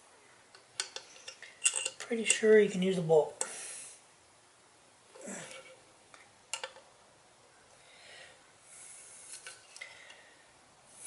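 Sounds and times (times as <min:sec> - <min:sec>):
light metallic clicks and knocks: 0:00.5 - 0:02.6.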